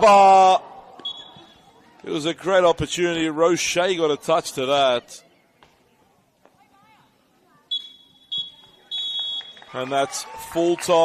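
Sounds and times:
referee's whistle blast: 1.0s - 1.6s, 7.7s - 9.7s.

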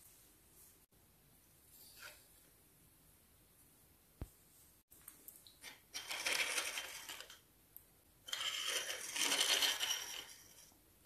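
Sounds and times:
plastic toy scraping on a tabletop: 6.0s - 7.4s, 8.3s - 10.8s.

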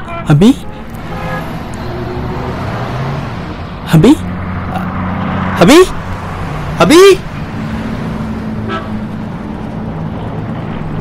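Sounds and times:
car horn: 0.0s - 2.6s, 8.6s - 9.1s
road noise: 0.0s - 11.0s
vehicle engines running: 0.0s - 11.0s.

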